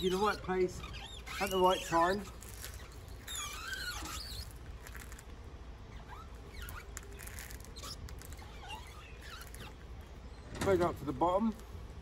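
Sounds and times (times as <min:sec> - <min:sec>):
squeegee squeaking on wet glass: 0:00.0 - 0:05.2, 0:05.9 - 0:09.9.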